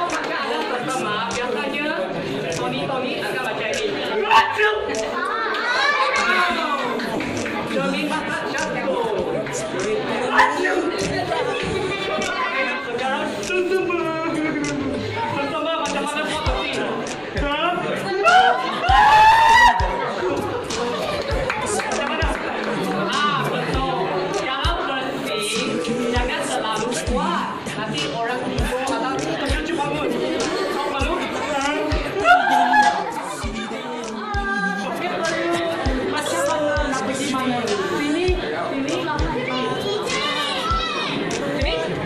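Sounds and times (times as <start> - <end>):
children chattering: 0.0 - 42.0.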